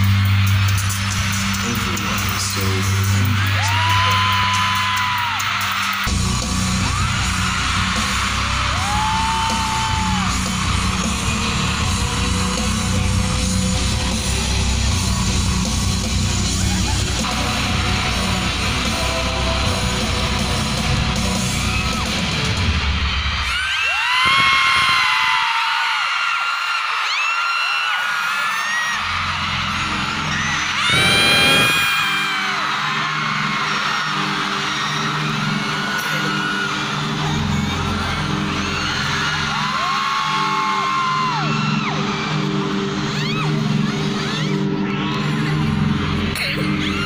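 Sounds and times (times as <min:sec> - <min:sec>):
amplified music with deep beat: 0:00.0 - 0:23.4
crowd screaming and cheering: 0:00.0 - 0:47.0.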